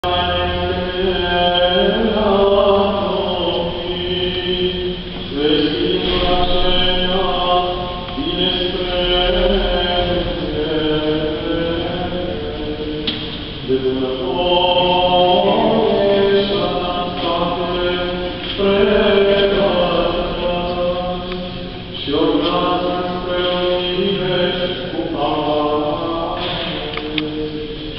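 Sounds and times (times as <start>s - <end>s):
men singing liturgical chant: 0.0s - 27.9s.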